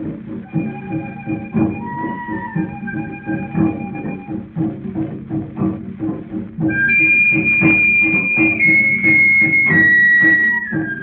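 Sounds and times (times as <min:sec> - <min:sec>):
hand drums beating: 0:00.0 - 0:11.0
high held whistle-like note: 0:00.4 - 0:04.4, 0:06.7 - 0:11.0.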